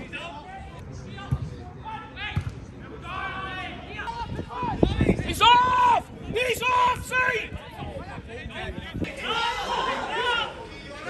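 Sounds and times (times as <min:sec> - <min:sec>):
people shouting: 0:09.1 - 0:10.7.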